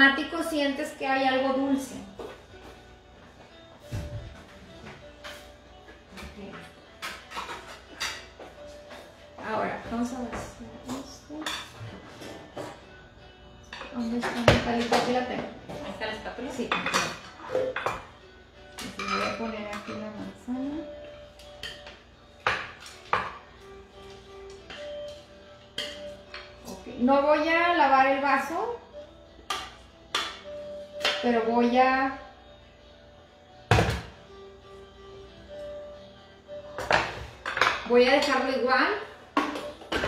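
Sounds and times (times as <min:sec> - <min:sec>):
faint music: 0:00.0 - 0:40.0.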